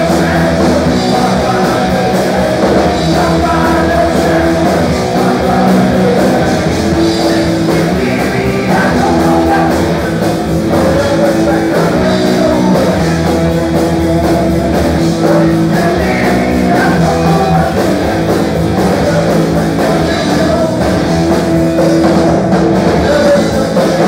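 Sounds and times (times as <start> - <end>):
bass guitar: 0.0 - 24.0
drum kit: 0.0 - 24.0
electric guitar: 0.0 - 24.0
person singing: 0.0 - 24.0.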